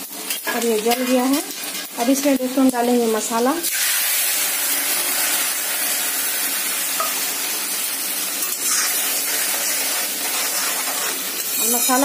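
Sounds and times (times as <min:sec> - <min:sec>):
spice paste sizzling in hot oil: 0:00.0 - 0:12.0
metal spoon stirring in iron pan: 0:08.4 - 0:12.0.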